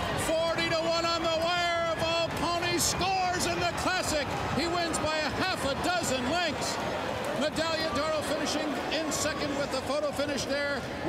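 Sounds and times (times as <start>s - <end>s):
man announcing a race: 0.0s - 11.0s.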